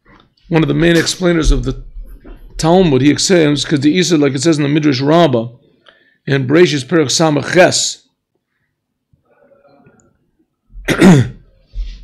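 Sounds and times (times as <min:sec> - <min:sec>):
breath noise: 0:05.6 - 0:06.3
man clearing his throat: 0:10.8 - 0:11.6.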